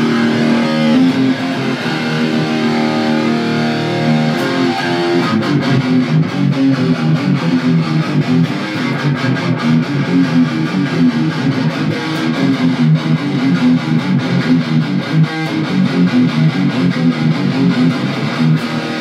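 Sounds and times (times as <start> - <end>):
electric guitar heavy metal riff: 0.0 - 19.0.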